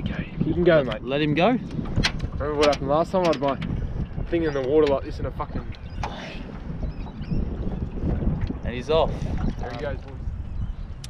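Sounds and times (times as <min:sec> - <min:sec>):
water sloshing against boat: 0:00.0 - 0:10.7
wind rumbling on microphone: 0:00.0 - 0:11.0.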